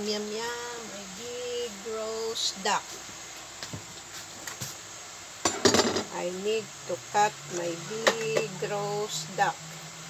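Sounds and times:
utensils and metal tray clattering: 5.5 - 6.1.

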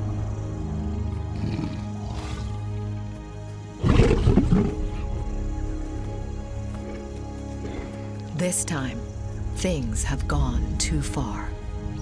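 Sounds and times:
background music: 0.0 - 12.0
lions growling and roaring: 0.9 - 2.9, 3.7 - 5.4.

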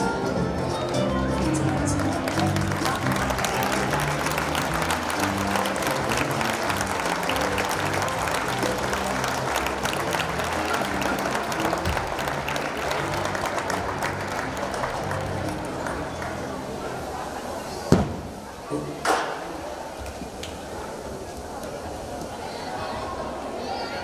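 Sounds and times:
recorded music: 0.0 - 16.8
audience clapping: 0.8 - 17.2.

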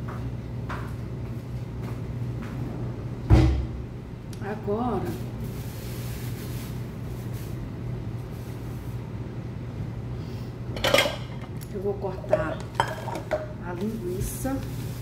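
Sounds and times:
steady low hum: 0.0 - 15.0
pots and utensils clattering: 10.8 - 11.5, 12.2 - 13.6.

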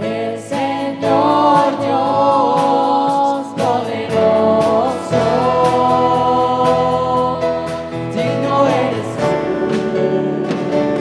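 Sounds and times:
guitars: 0.0 - 11.0
keyboard: 0.0 - 11.0
voices singing together: 0.0 - 11.0.

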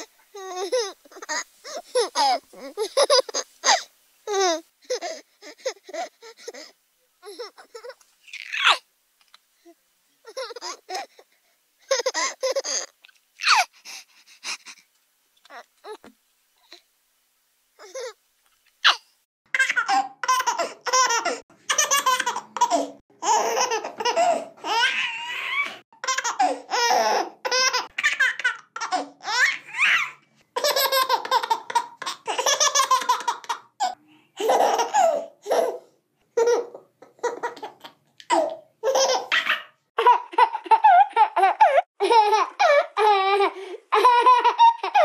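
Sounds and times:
baby laughing: 0.0 - 8.8, 10.2 - 11.2, 11.8 - 13.7, 19.6 - 35.8, 36.4 - 45.0.

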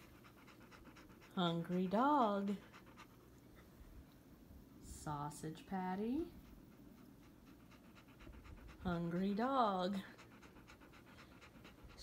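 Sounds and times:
dog panting: 0.0 - 4.1, 6.0 - 12.0.

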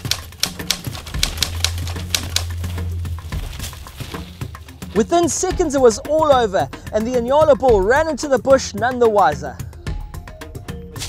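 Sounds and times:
typewriter keystroke clicks: 0.0 - 2.6
low musical drone: 0.0 - 7.0.

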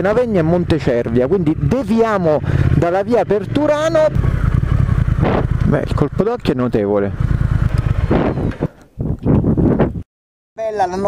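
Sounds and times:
motorcycle engine running at low revs: 0.0 - 8.8.

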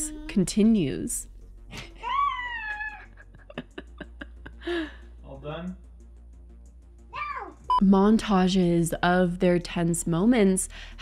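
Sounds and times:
toddler squealing: 2.0 - 3.1, 7.1 - 7.6.

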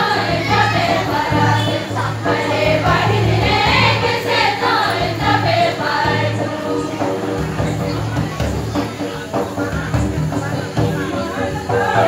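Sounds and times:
group singing in chorus: 0.0 - 7.8, 11.0 - 12.0
barrel drum beat: 0.0 - 12.0.

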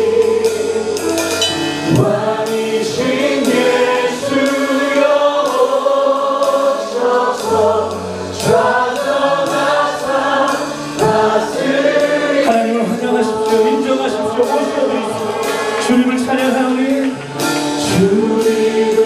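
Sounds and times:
many voices singing: 0.0 - 19.0
worship band playing: 0.0 - 19.0
cymbals struck: 1.2 - 2.2.

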